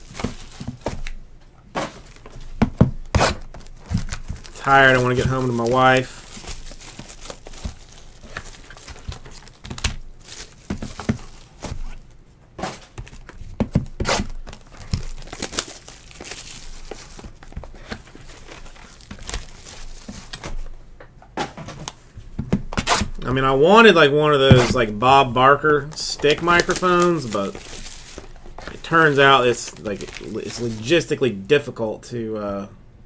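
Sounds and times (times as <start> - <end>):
handling cardboard box: 0.0 - 1.2, 1.8 - 20.7, 24.4 - 31.0
shrink wrap crinkling and tearing: 0.0 - 1.2, 2.0 - 12.2, 13.0 - 20.7, 24.4 - 31.2.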